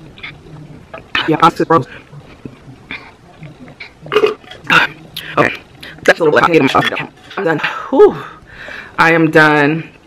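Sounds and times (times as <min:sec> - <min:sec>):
woman burping: 0:02.4 - 0:05.6.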